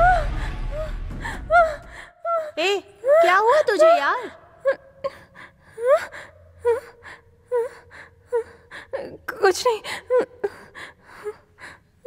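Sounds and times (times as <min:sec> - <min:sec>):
woman gasping and whimpering: 0:00.0 - 0:12.0.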